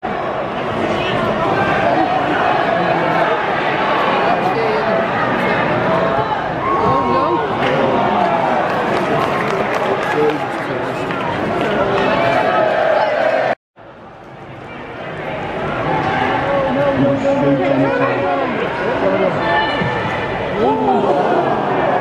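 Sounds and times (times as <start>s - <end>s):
crowd shouting and chanting: 0.1s - 13.6s, 14.8s - 22.0s.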